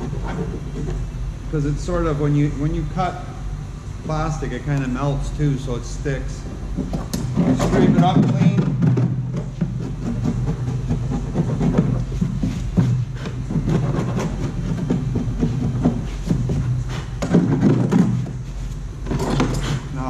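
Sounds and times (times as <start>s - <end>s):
steady low hum: 0.0s - 20.0s
hand tool scraping plastic: 6.8s - 18.4s.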